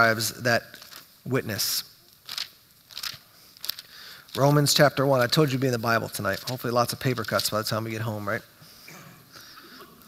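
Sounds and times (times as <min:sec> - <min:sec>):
thin pages rustling: 0:02.2 - 0:05.4.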